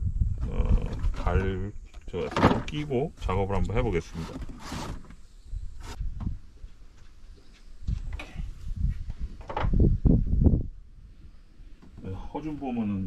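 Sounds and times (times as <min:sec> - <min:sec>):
knocks and rustles of handling: 0:00.8 - 0:03.0, 0:03.9 - 0:05.2.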